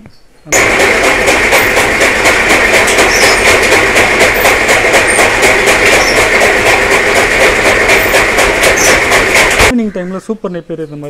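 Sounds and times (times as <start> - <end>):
chaff cutter chopping straw: 0.6 - 9.7.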